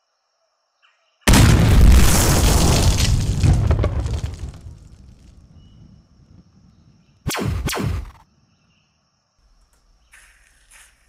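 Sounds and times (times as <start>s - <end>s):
explosion boom and rumble: 1.3s - 6.5s.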